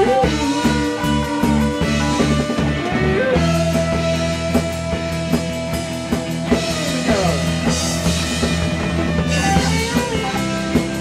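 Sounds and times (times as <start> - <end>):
guitar notes sliding downward: 0.0 - 11.0
rock band playing: 0.0 - 11.0.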